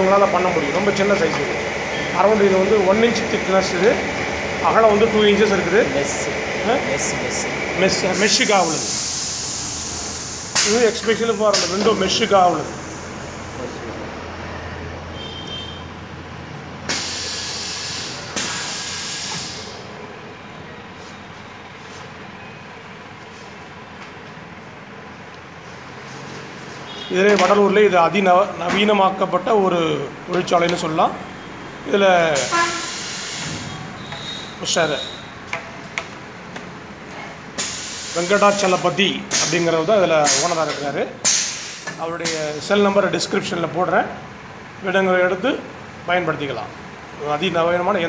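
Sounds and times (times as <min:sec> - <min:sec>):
compressed air hissing: 0:07.9 - 0:13.6, 0:16.9 - 0:20.0, 0:32.3 - 0:35.3, 0:37.6 - 0:42.7.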